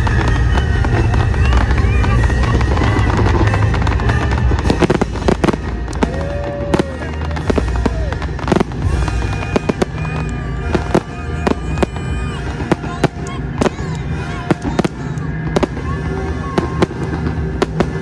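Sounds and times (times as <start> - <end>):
fireworks bangs: 0.0 - 18.0.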